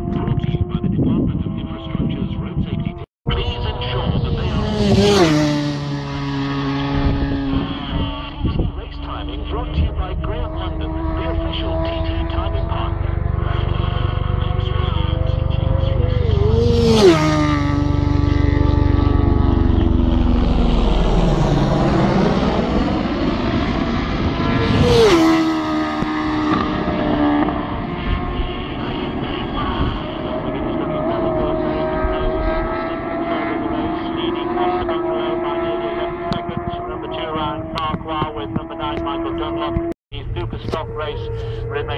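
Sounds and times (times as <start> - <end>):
distant motorcycles running: 0.0 - 41.9
race motorcycles passing at speed: 0.0 - 41.9.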